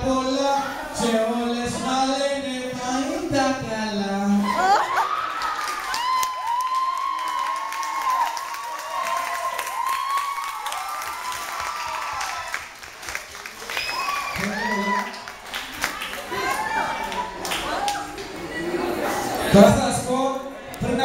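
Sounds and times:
audience clapping and cheering: 0:04.9 - 0:18.6.

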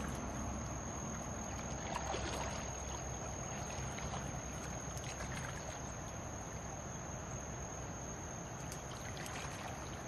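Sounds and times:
stream water running: 0:00.0 - 0:10.0.

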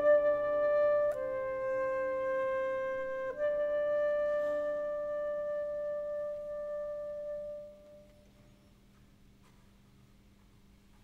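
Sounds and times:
flute holding long note: 0:00.0 - 0:08.5.

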